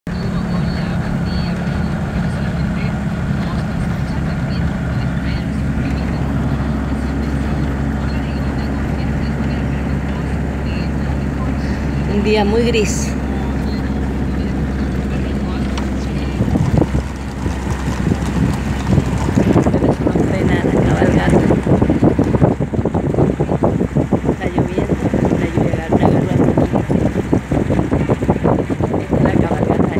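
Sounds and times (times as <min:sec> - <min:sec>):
vehicle engine and road drone: 0:00.0 - 0:29.9
wind buffeting microphone: 0:00.2 - 0:29.9.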